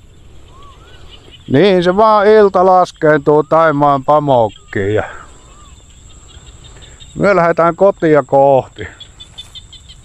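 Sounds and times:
faint wavering bird call: 0.0 - 7.4
insects droning: 0.0 - 10.0.

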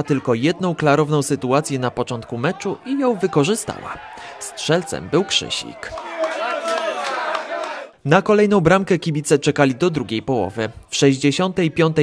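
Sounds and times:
voices shouting and cheering: 0.0 - 8.0.

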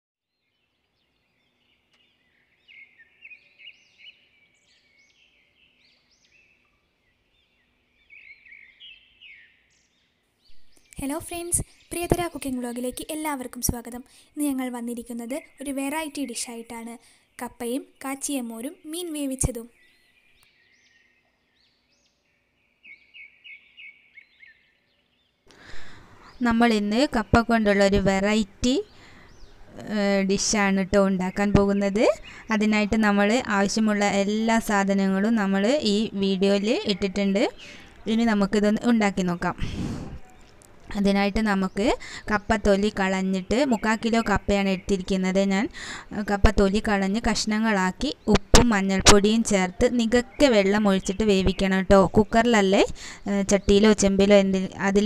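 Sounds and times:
birds chirping: 0.3 - 55.0.

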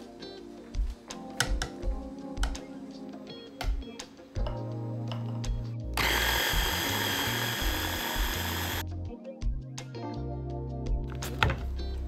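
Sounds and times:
background music: 0.0 - 12.0
electric blender running: 6.0 - 8.8.

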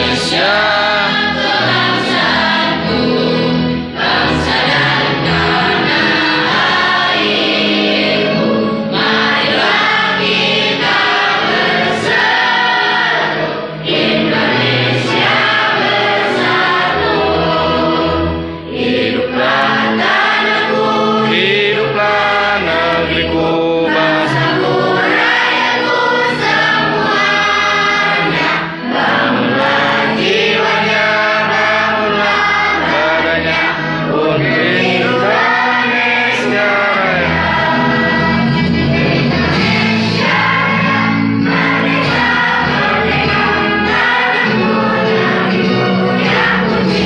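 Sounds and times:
children singing in unison: 0.0 - 47.0
instrumental accompaniment with bass: 0.0 - 47.0.

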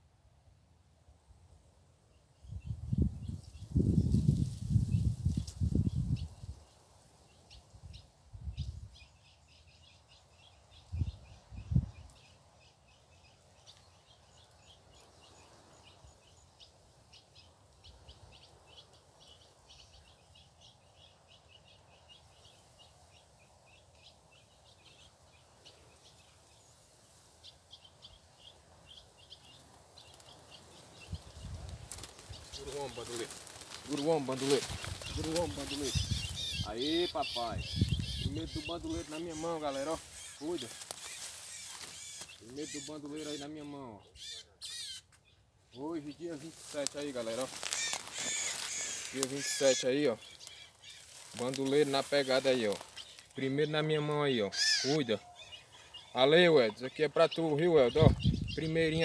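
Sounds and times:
small birds chip calls: 2.4 - 59.0.

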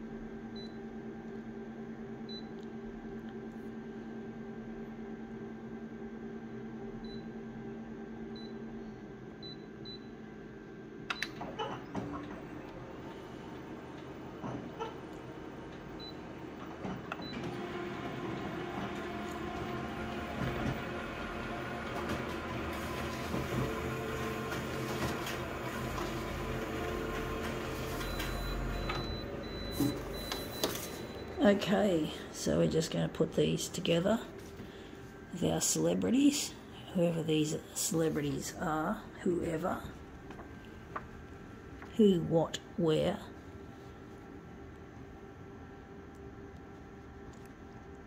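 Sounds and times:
copier humming: 0.0 - 48.0
printer rollers whirring: 11.2 - 36.0
copier scanning noise: 11.2 - 40.9
touch panel beeps: 28.0 - 31.4.

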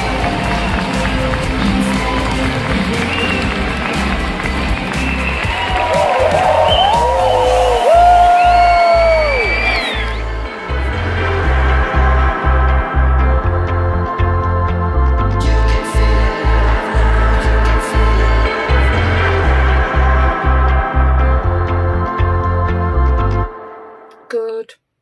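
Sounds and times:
audience applauding and cheering: 0.0 - 12.7
music: 0.0 - 24.7.

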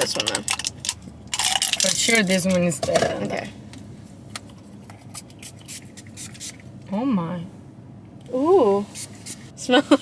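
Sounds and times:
spray bottle hissing: 5.4 - 6.6.

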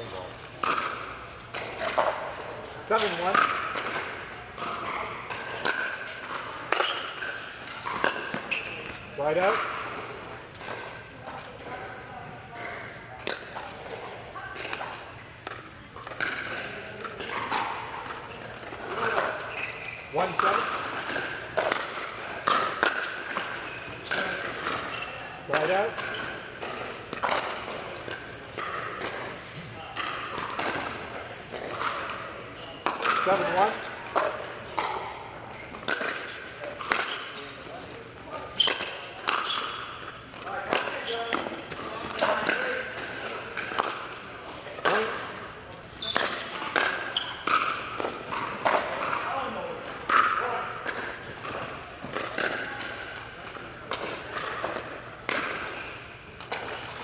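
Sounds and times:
shoes squeaking on court: 0.0 - 10.0, 18.2 - 22.4, 23.1 - 31.1, 31.7 - 33.9, 34.6 - 49.1
ball bouncing on hard court: 0.0 - 11.5, 14.6 - 37.4, 38.3 - 45.4, 46.0 - 57.0.

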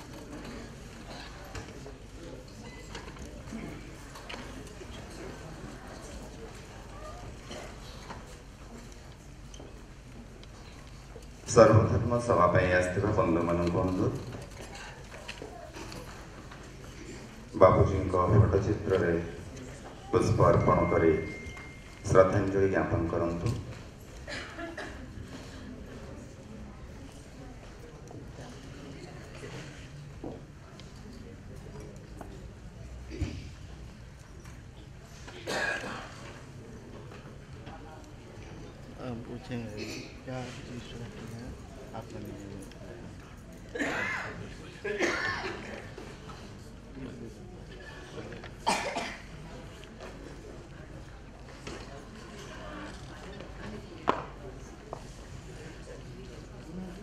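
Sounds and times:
low murmuring voices: 0.0 - 57.0.

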